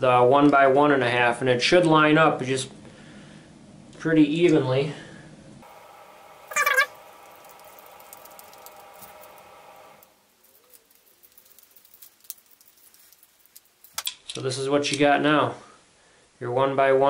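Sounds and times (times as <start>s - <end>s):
steady hum: 5.6s - 10.3s
brief pitched cry: 6.5s - 6.9s.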